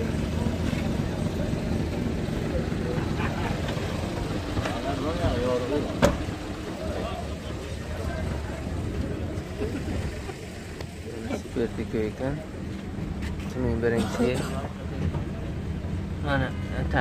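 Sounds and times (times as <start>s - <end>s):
vehicle engines rumbling: 0.0s - 17.0s
voices talking: 0.0s - 17.0s.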